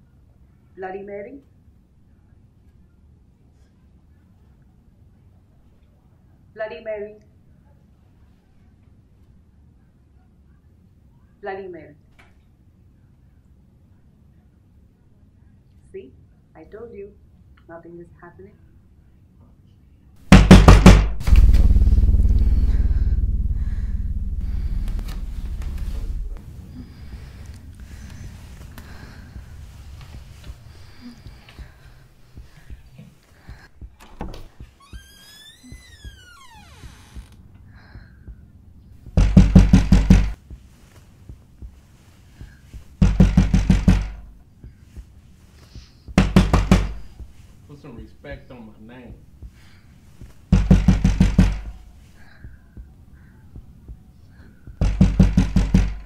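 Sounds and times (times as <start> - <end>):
rapid loud knocking: 20.3 - 27.4, 39.1 - 40.4, 42.7 - 44.3, 46.1 - 47.4, 50.2 - 51.8, 54.7 - 56.0
low rumbling drone: 21.1 - 32.2.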